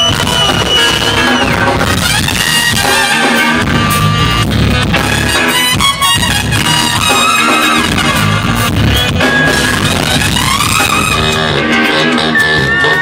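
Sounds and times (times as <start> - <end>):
bass guitar: 0.0 - 13.0
drum kit: 0.0 - 13.0
electric guitar: 0.0 - 13.0
horn section: 0.0 - 13.0.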